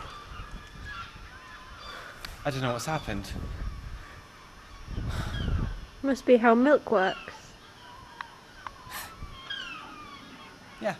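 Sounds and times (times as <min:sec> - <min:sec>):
animal calls: 0:06.9 - 0:10.9.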